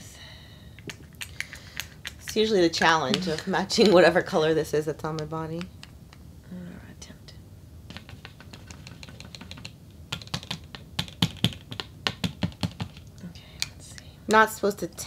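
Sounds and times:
small bottles and caps clicking: 0.8 - 2.4.

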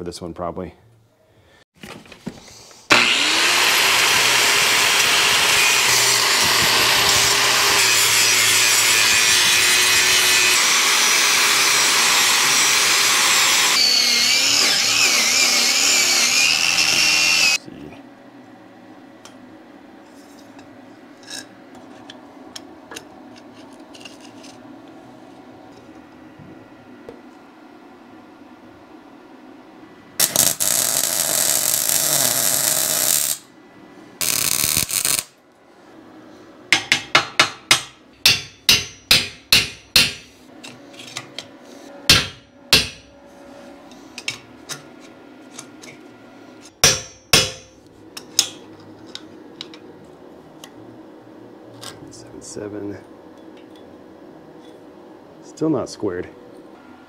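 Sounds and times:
hammer striking steel: 36.8 - 40.4, 42.1 - 43.1, 46.8 - 47.8.

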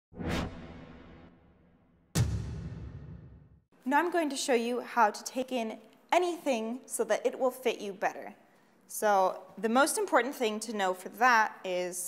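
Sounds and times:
whoosh: 0.1 - 3.6.

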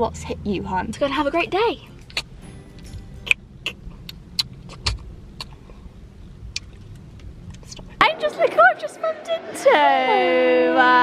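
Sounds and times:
car cabin hum: 0.0 - 8.1.

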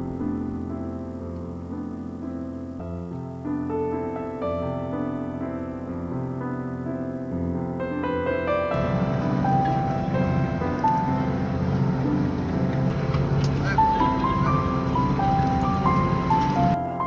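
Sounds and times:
slow piano melody: 0.0 - 17.0
indistinct voices: 13.4 - 15.3.

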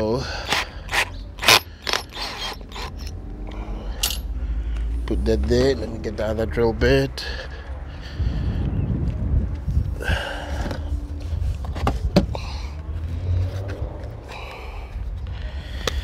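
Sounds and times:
wind buffeting microphone: 5.3 - 14.2.

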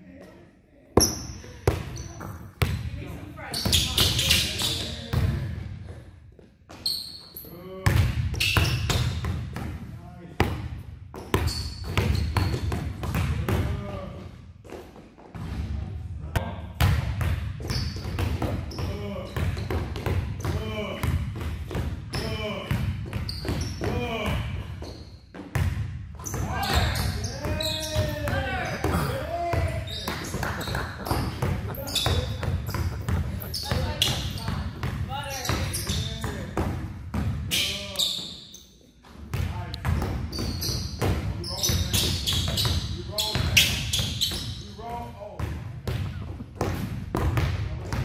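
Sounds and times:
basketballs bouncing on gym floor: 1.0 - 15.8, 16.8 - 38.3, 39.0 - 48.0.

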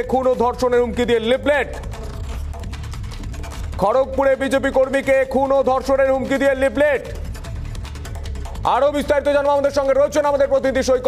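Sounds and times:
fast clock-like ticking: 0.0 - 11.0.

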